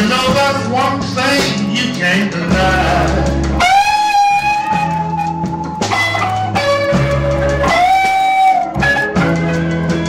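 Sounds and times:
bass guitar: 0.0s - 10.0s.

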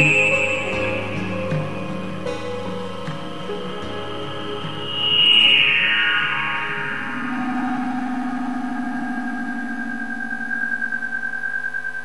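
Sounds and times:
sustained synthesizer tones: 0.0s - 12.0s.

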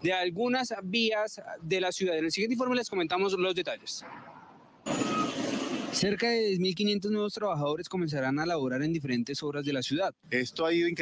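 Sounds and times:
trucks and traffic noise: 2.9s - 6.4s.

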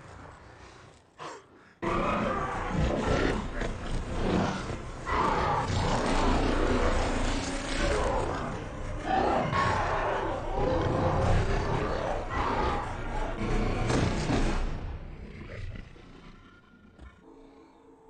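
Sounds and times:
zombie roaring and snarling: 1.4s - 17.4s
dramatic music: 2.2s - 15.4s.

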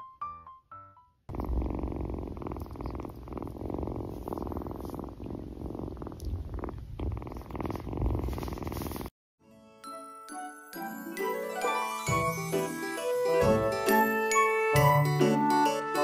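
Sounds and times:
kitten purring: 1.3s - 9.1s.

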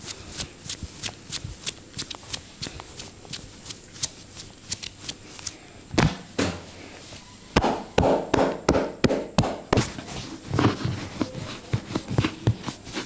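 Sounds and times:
hands rubbing and patting fabric: 0.0s - 5.6s, 9.4s - 13.0s.

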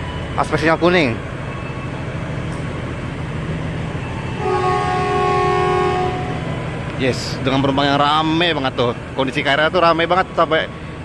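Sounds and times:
low station hum: 0.0s - 11.0s
electric train horn chord: 4.4s - 6.5s.

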